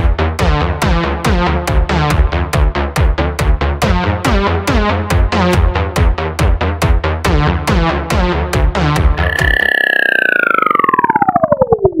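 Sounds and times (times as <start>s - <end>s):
electronic background music: 7.5s - 12.0s
synth tone gliding downward: 9.2s - 12.0s.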